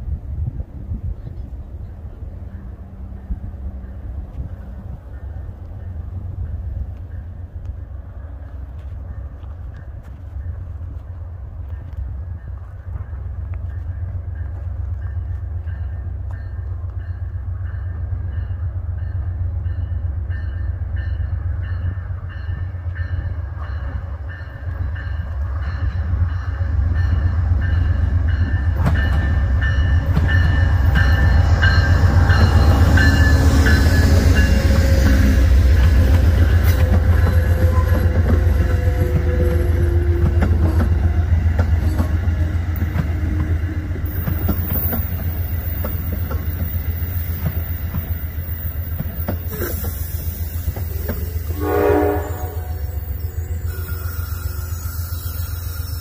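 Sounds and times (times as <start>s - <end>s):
diesel locomotive engine: 0.0s - 56.0s
train rumbling and clattering past: 0.0s - 56.0s
locomotive bell ringing: 13.7s - 41.0s, 50.3s - 56.0s.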